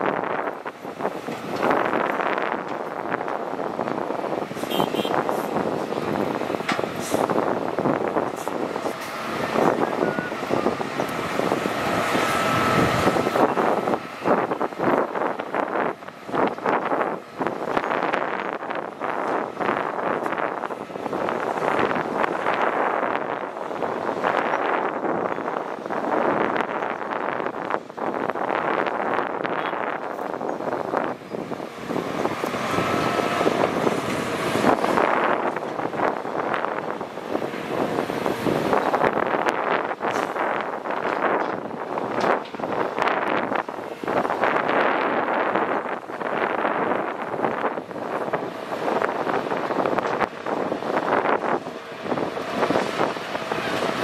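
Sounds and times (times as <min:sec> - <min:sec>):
excavator engines and hydraulics: 0:00.0 - 0:54.0.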